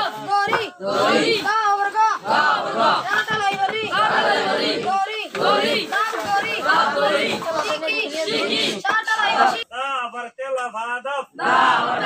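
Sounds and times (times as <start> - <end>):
boys reciting aloud in unison: 0.0 - 9.8, 11.2 - 12.0.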